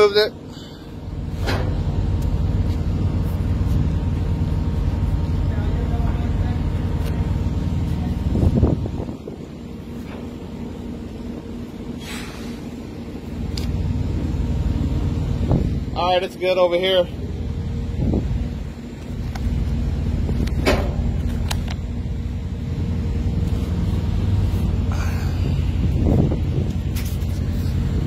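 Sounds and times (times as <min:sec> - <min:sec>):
truck engine idling: 0:00.0 - 0:28.0
wind buffeting microphone: 0:06.6 - 0:10.4, 0:15.1 - 0:16.0, 0:17.8 - 0:18.7, 0:25.4 - 0:28.0.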